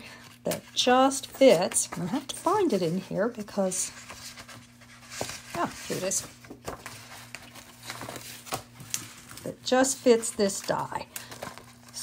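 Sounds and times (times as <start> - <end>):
paper rustling: 0.1 - 12.0.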